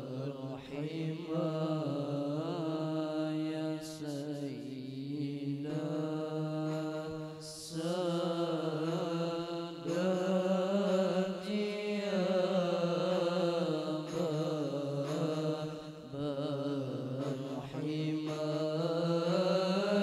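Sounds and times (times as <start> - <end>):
boys chanting in unison: 0.0 - 20.0.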